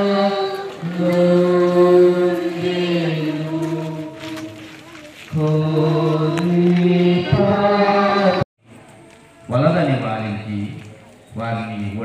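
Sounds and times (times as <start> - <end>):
slow devotional chant: 0.0 - 8.5.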